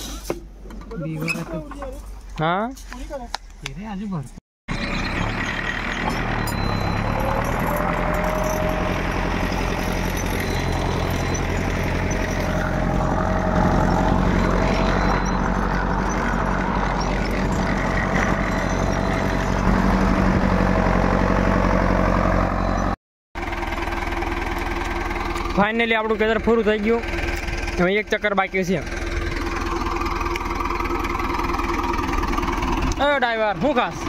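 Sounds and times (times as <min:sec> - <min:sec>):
tractor diesel engine under load: 0:04.7 - 0:34.0.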